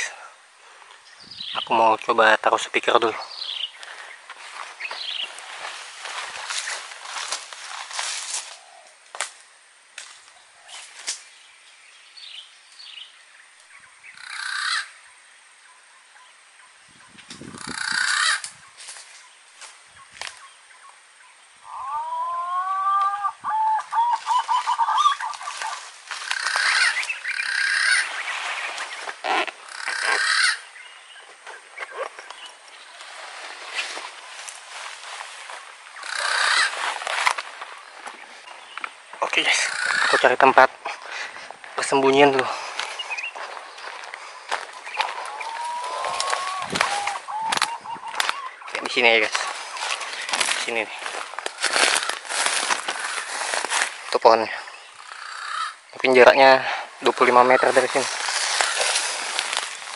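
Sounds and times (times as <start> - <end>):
rustling in dry brush: 3.2 - 9.4, 17.2 - 20.5, 24.0 - 54.6, 57.0 - 59.9
footsteps in dry brush: 3.3 - 9.4, 10.0 - 11.3, 17.2 - 20.5, 23.8 - 54.6, 56.4 - 59.9.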